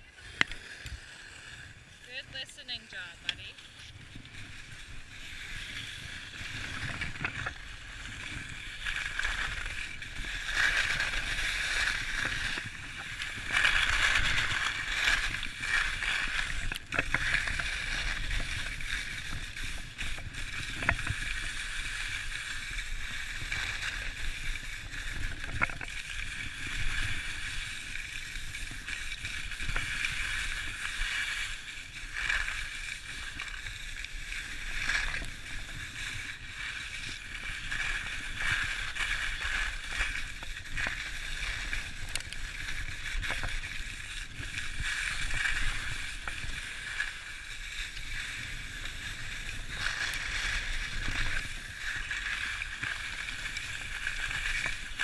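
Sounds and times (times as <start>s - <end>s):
skis sliding over packed snow: 0.0s - 55.0s
wind rumbling on microphone: 0.0s - 55.0s.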